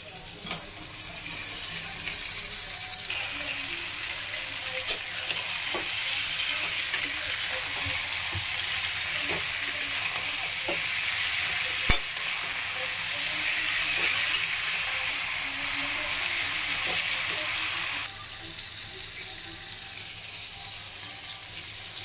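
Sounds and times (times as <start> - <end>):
eggplant sizzling in oil: 0.0 - 22.0.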